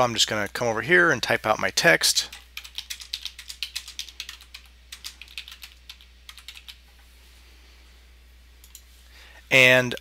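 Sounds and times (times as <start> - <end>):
computer keyboard typing: 2.3 - 6.8.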